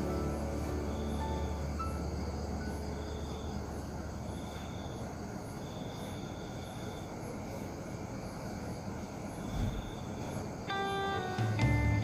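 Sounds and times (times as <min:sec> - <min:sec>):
faint high chirping: 0:00.0 - 0:12.0
plucked guitar music: 0:10.7 - 0:12.0.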